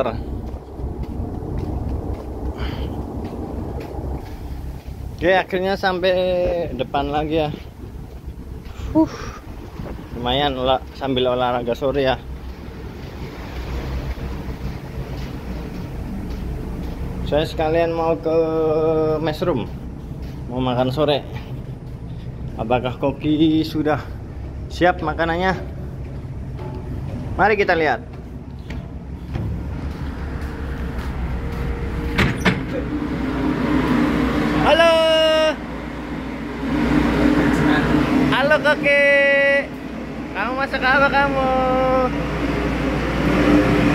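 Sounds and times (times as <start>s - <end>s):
wind noise on microphone: 0.0s - 11.0s
ship engine drone: 0.0s - 43.9s
man calling out: 34.6s - 35.6s, 40.6s - 42.2s.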